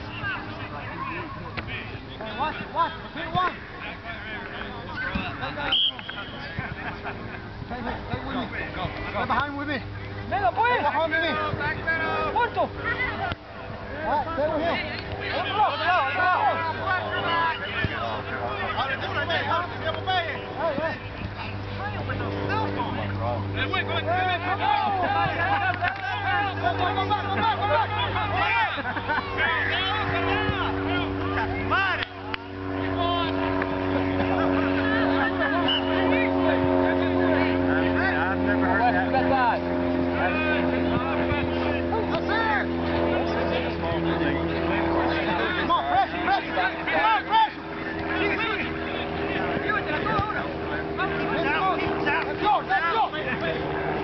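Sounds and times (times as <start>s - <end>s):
distant players shouting: 0.0s - 54.0s
distant voices: 0.0s - 54.0s
steady low hum: 0.0s - 54.0s
motor drone: 6.6s - 54.0s.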